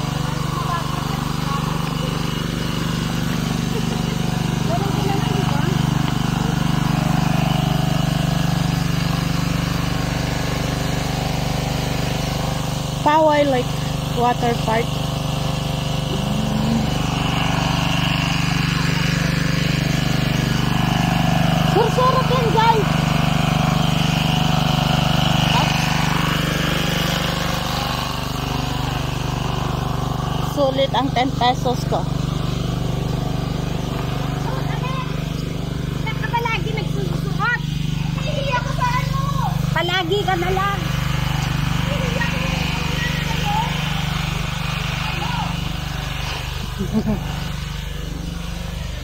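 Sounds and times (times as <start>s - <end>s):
small engine humming: 0.0s - 49.0s.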